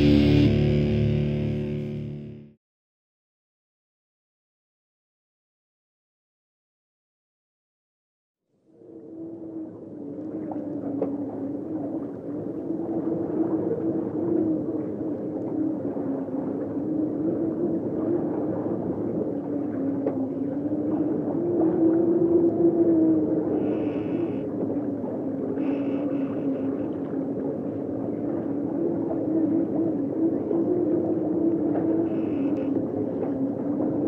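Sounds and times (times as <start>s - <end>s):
low wavering drone: 0.0s - 2.6s, 8.7s - 34.0s.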